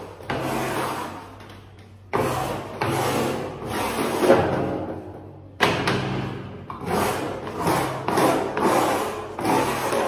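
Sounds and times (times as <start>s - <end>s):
trowel scraping mortar: 6.7s - 10.0s.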